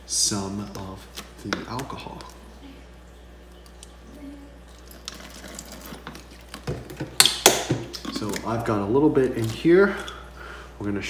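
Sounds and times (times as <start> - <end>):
liquid pouring into bottle: 1.5 - 8.6.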